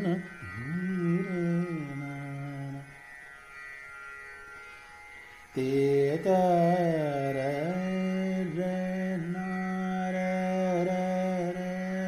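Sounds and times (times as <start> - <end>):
man singing classical vocal: 0.0 - 2.9, 5.5 - 12.0.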